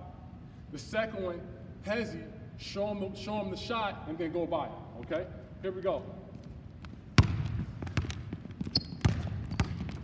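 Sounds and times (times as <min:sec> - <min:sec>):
basketball bouncing on hardwood floor: 0:06.8 - 0:10.0.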